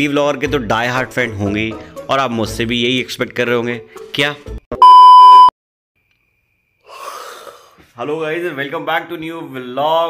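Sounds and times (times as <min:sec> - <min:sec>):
electronic censor bleep: 0:04.8 - 0:05.5.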